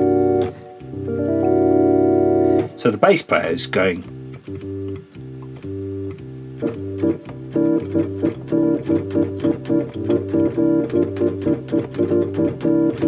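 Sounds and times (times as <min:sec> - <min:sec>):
electronic keyboard bass line: 0:00.0 - 0:13.0
short repeated keyboard chords: 0:00.0 - 0:13.0.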